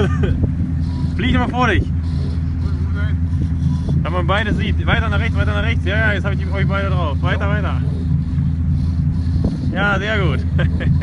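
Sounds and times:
boat motor humming: 0.0 - 11.0.

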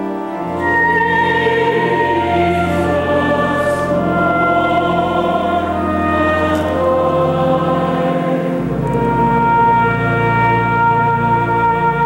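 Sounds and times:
choir singing held chords: 0.0 - 12.0.

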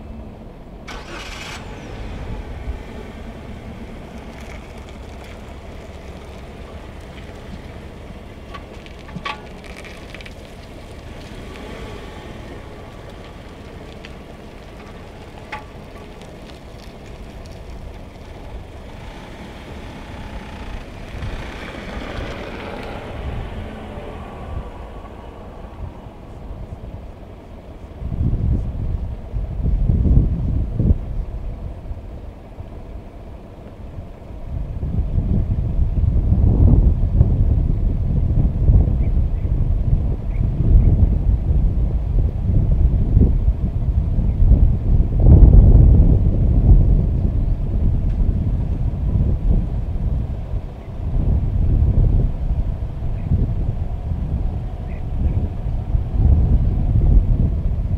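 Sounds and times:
car rolling past: 0.0 - 57.9
wind buffeting microphone: 0.0 - 57.9.

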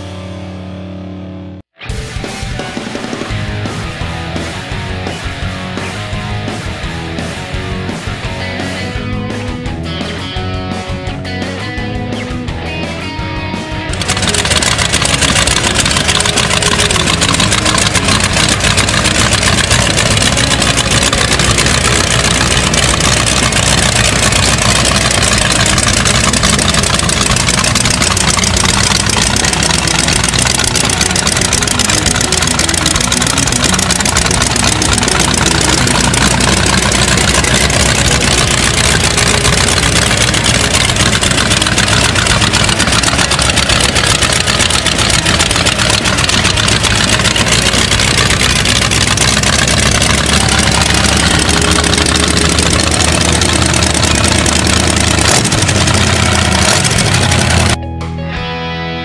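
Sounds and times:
loud car engine idling: 13.9 - 57.9.

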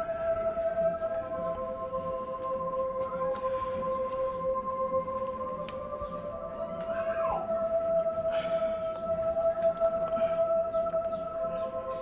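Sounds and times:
sustained synthesizer tones: 0.0 - 12.0.

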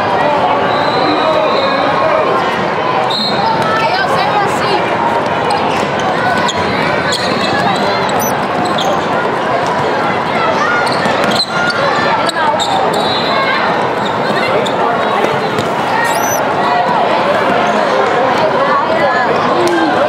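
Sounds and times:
overlapping chatter: 0.0 - 20.0.

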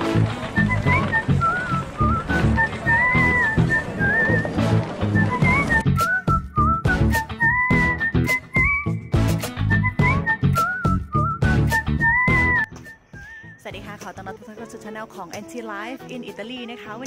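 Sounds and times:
whistled melody over a beat: 0.1 - 13.6.

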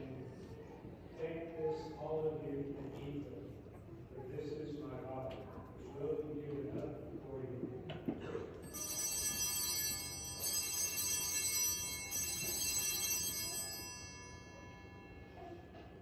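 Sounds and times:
altar bells ringing: 8.6 - 16.0.

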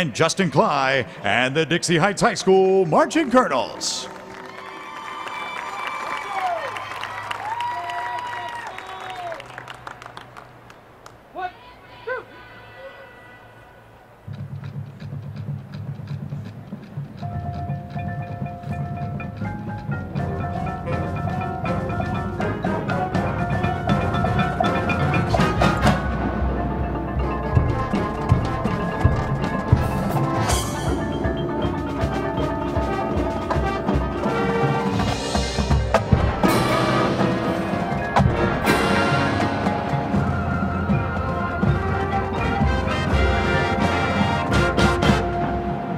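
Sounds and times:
marching band playing: 13.4 - 45.9
drums: 14.2 - 45.9
sharp percussion strokes: 14.3 - 45.9.

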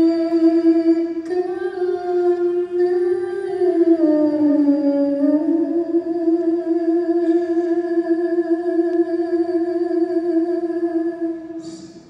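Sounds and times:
woman singing a long note: 0.0 - 12.0.

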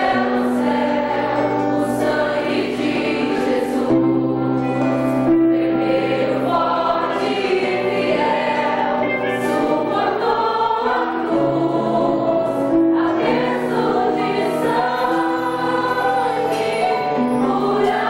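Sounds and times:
choir singing worship song: 0.0 - 18.0.

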